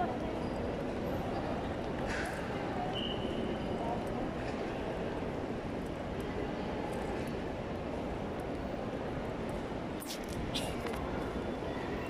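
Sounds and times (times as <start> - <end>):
distant voices hubbub: 0.0 - 12.0.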